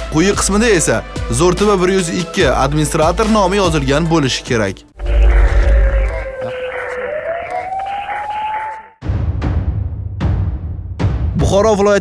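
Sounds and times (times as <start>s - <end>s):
rushing noise: 5.0s - 8.1s
tone gliding up in pitch: 5.0s - 8.9s.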